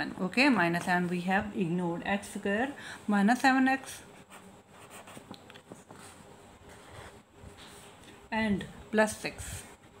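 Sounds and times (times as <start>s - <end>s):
pen scratching on paper: 4.2s - 5.3s.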